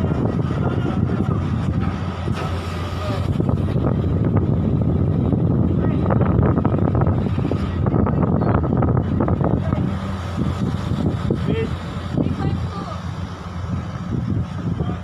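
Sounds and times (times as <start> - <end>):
ferry engines rumbling: 0.0 - 15.0.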